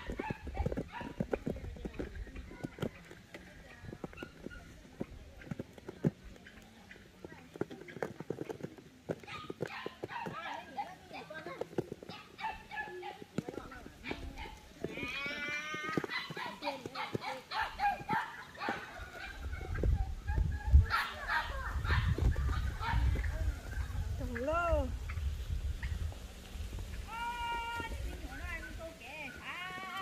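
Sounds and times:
voices talking in background: 0:00.0 - 0:30.0.

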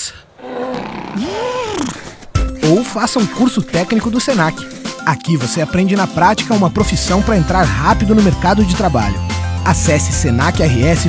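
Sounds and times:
cartoon polar bear roaring: 0:00.3 - 0:02.0.

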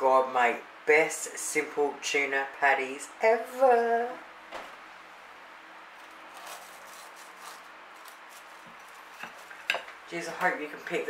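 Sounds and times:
knife crunching through crust: 0:06.0 - 0:09.7.

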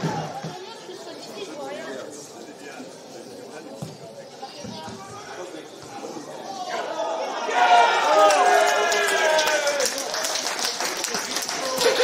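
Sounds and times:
voices calling and chattering: 0:00.0 - 0:12.0.

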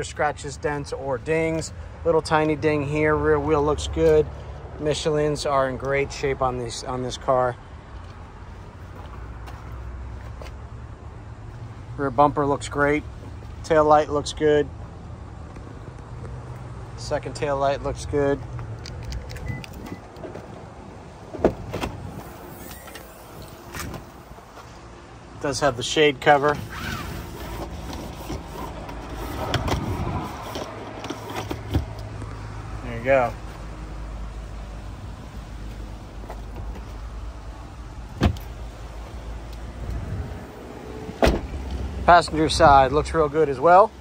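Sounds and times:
car rear hatch slamming: 0:38.1 - 0:38.6, 0:41.1 - 0:41.6.

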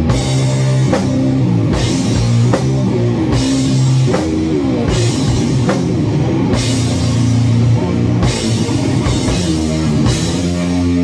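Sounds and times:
distorted electric guitar riff: 0:00.0 - 0:11.0
drum kit: 0:00.0 - 0:11.0.

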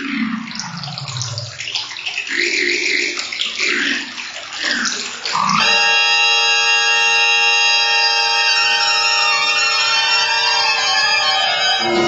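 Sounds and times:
bubbling watery electronic textures: 0:00.0 - 0:05.7
loud sustained electronic drone: 0:05.8 - 0:12.0
falling electronic glide: 0:11.8 - 0:12.0.

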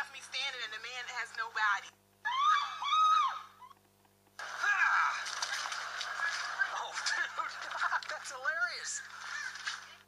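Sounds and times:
person shrieking: 0:02.3 - 0:03.6.

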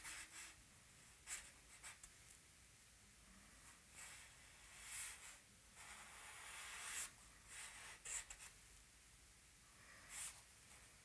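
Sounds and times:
charcoal scratching on paper: 0:03.7 - 0:08.6.

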